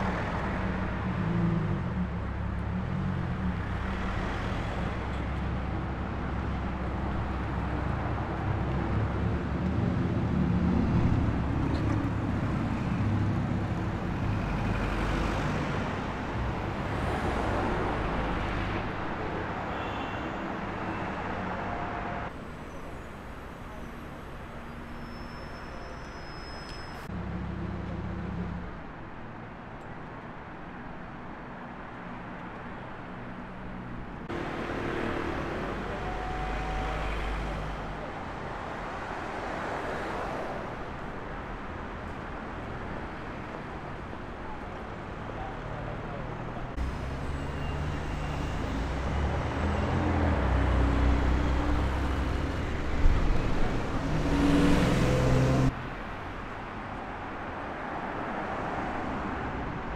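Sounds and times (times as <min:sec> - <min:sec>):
city street traffic: 0:00.0 - 0:59.9
car passing with loud engine: 0:45.4 - 0:59.9.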